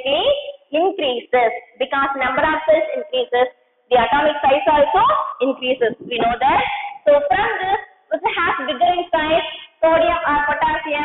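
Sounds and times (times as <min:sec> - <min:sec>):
woman talking in sing-song phrases: 0:04.0 - 0:11.0.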